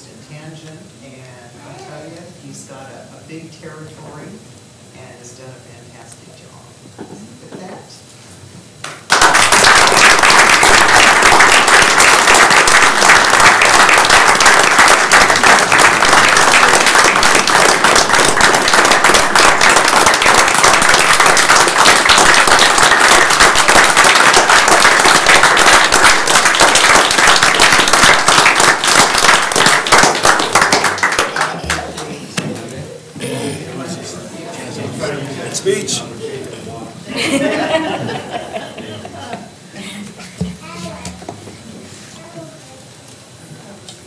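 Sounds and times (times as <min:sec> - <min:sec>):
crowd applauding: 0:08.8 - 0:32.2.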